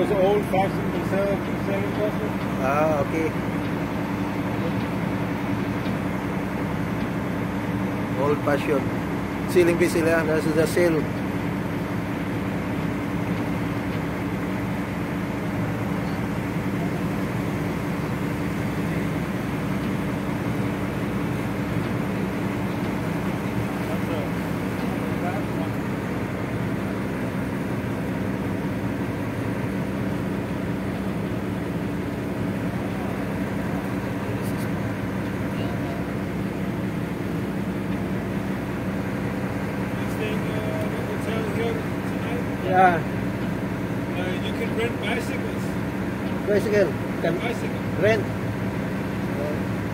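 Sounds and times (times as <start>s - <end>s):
low engine drone: 0.0s - 49.9s.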